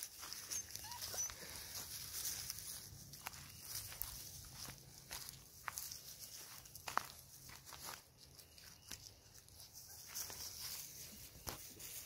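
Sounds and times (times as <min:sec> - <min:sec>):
puppies scuffling in pine needles: 0:00.0 - 0:12.0
faint puppy whimpers: 0:00.4 - 0:01.7.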